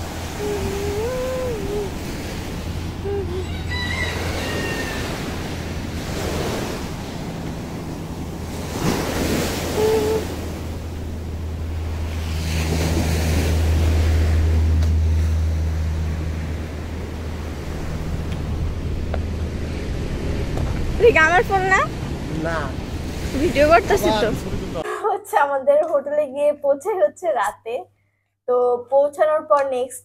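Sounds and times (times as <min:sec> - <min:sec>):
waves washing onto beach: 0:00.0 - 0:24.8
wind buffeting microphone: 0:00.0 - 0:24.8.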